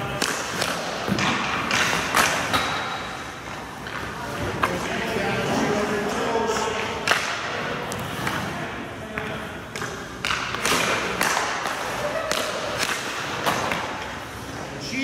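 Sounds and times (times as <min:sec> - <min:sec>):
pucks knocking off boards: 0:00.0 - 0:14.3
hockey sticks striking pucks: 0:00.0 - 0:14.7
skate blades scraping ice: 0:07.8 - 0:08.6.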